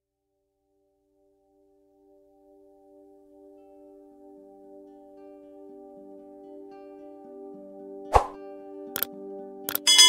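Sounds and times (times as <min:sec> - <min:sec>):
calm background music: 0:00.6 - 0:10.0
pop sound effect: 0:08.1 - 0:08.4
bright bell ding: 0:09.8 - 0:10.0.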